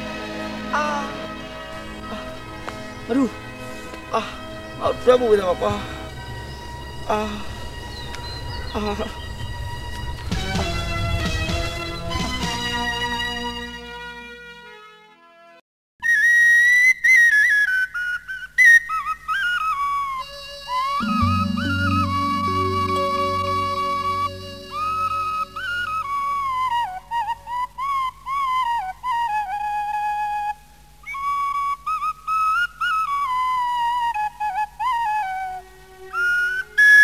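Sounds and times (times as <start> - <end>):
flute playing slow melody: 16.0 - 37.0
high wind instrument melody: 20.8 - 27.6
faint low accompaniment: 21.0 - 27.7.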